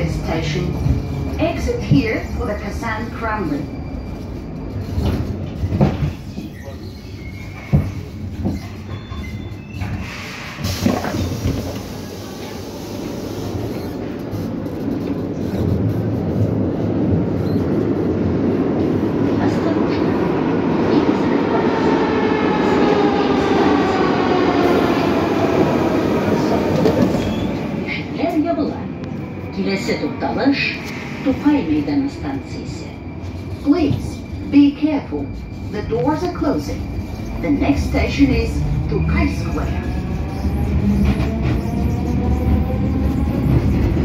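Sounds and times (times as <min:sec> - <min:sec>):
metro train running noise: 0:00.0 - 0:44.0.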